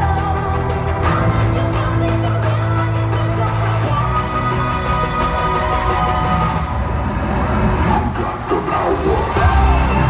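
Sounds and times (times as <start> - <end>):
loud live pop concert music: 0.0 - 10.0
crowd screaming and cheering: 3.9 - 10.0.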